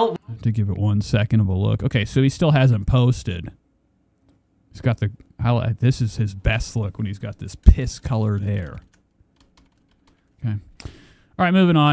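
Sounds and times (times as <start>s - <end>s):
keyboard and mouse clicking: 7.2s - 10.4s.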